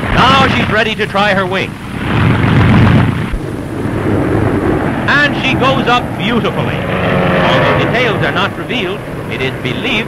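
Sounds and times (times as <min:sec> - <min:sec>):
propeller aircraft engines roaring: 0:00.0 - 0:10.0.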